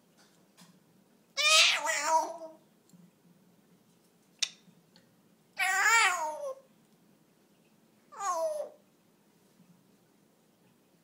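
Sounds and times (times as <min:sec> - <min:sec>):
parrot calling: 0:01.4 - 0:02.6, 0:05.6 - 0:06.7, 0:08.1 - 0:08.8.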